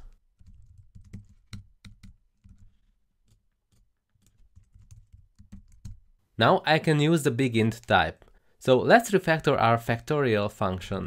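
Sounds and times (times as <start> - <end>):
computer keyboard keystrokes: 0.4 - 2.7, 3.3 - 6.0.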